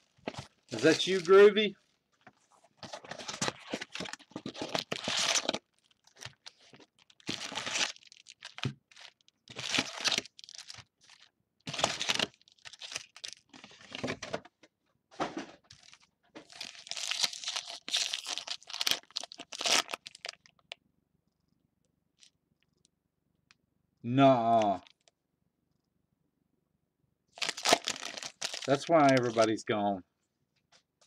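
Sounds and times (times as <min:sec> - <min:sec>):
foil wrapper crinkling and tearing: 0:00.0 - 0:01.9, 0:02.8 - 0:14.0, 0:15.7 - 0:20.7, 0:27.4 - 0:29.5
man's voice: 0:00.8 - 0:01.7.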